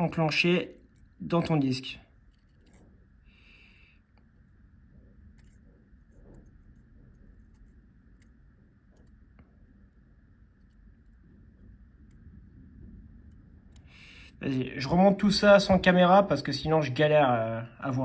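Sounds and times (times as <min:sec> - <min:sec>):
low room noise: 0:00.0 - 0:18.0.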